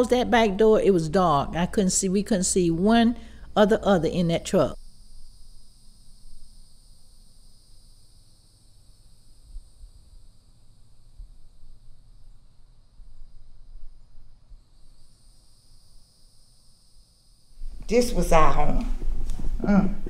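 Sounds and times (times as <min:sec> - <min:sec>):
high-pitched hiss: 0:00.0 - 0:20.0.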